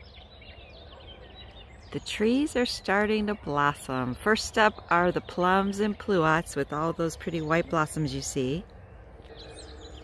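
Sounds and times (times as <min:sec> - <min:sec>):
low steady outdoor rumble: 0:00.0 - 0:10.0
small birds chirping: 0:00.0 - 0:10.0.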